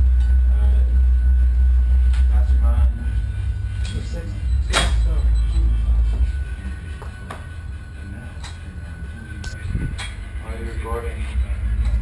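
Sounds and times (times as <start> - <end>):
low microphone rumble: 0.0 - 12.0.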